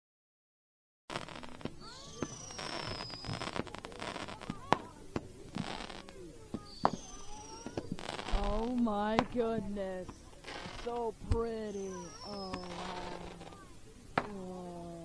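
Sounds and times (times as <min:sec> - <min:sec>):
firework whistles sliding downward: 0:01.1 - 0:04.5, 0:05.6 - 0:08.4, 0:11.7 - 0:13.6
firework hissing: 0:01.1 - 0:15.0
fireworks cracking and popping: 0:01.1 - 0:15.0.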